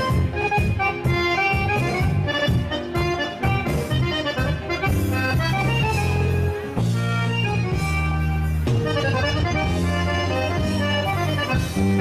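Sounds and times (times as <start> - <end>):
accordion dance music: 0.0 - 12.0.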